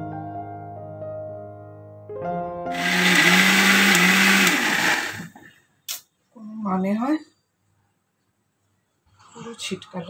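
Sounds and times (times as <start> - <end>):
mixer grinder running: 2.7 - 5.5.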